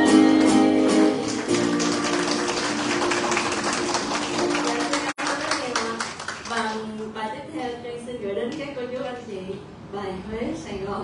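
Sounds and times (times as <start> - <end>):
acoustic guitar playing: 0.0 - 5.1.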